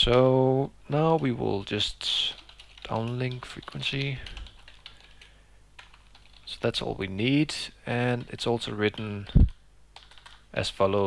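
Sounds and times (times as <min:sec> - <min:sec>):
keyboard typing clicks: 0:08.1 - 0:10.4.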